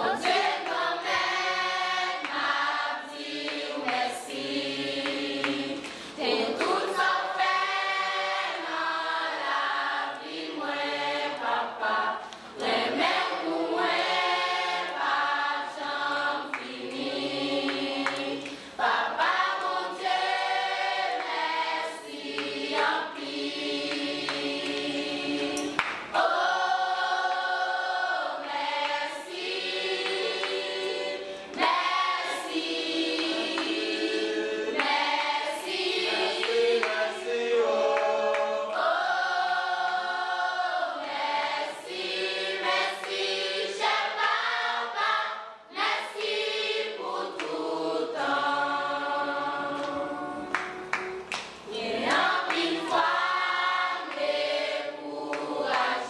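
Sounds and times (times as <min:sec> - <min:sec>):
choir singing in harmony: 0:00.0 - 0:56.0.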